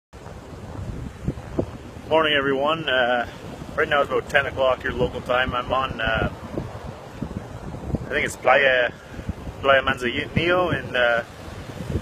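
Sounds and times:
surf on a beach: 0:00.2 - 0:12.0
wind buffeting microphone: 0:00.2 - 0:12.0.

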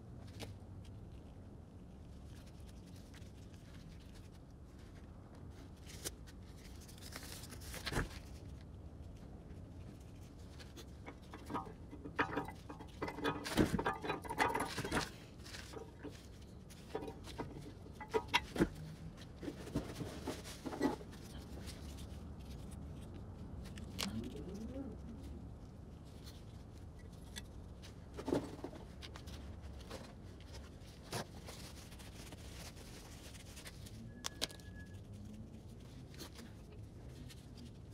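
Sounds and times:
metal parts clicking and clacking: 0:11.0 - 0:18.8.

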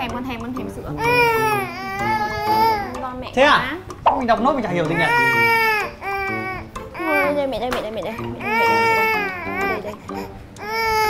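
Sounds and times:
baby crying: 0:00.9 - 0:03.0, 0:04.7 - 0:11.0.

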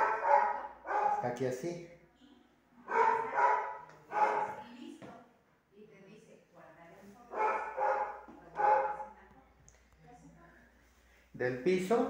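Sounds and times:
dog barking: 0:00.0 - 0:01.4, 0:02.8 - 0:04.6, 0:07.3 - 0:09.2.

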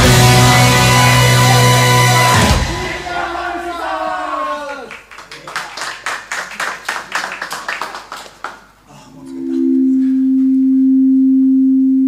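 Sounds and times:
sharp claps: 0:00.0 - 0:01.8, 0:04.9 - 0:08.7
steady low electronic tone: 0:09.1 - 0:12.0.

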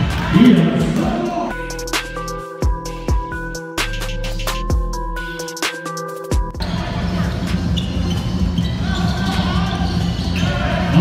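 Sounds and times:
electronic background music: 0:00.0 - 0:11.0.

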